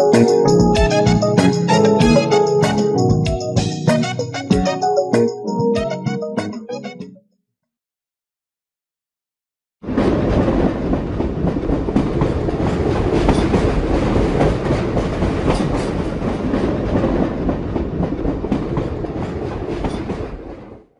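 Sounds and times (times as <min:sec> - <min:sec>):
dense rumbling and rattling: 0:09.8 - 0:20.7.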